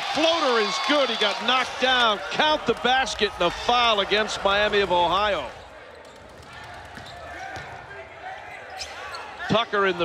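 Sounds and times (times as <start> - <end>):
murmur of arena crowd: 0.0 - 10.0.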